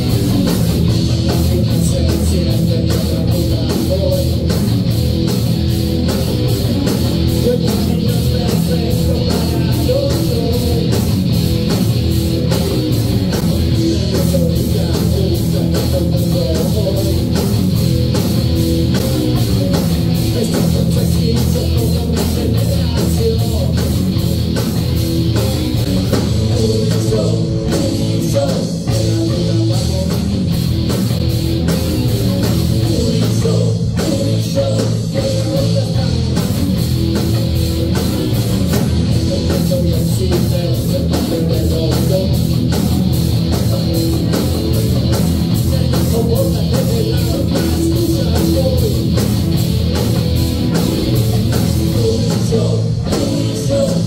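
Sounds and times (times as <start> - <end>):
distorted electric guitars: 0.0 - 54.0
heavy metal band playing live: 0.0 - 54.0.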